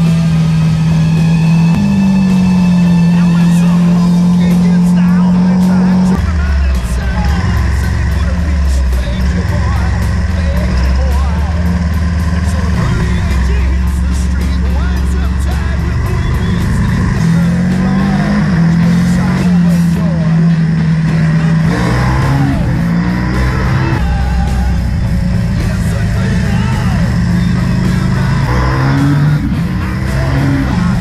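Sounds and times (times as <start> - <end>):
motorcycle engine at speed: 0.0 - 31.0.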